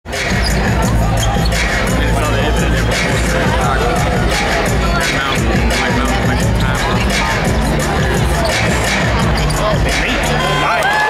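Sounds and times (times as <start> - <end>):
arena music: 0.1 - 11.0
crowd voices: 0.1 - 11.0.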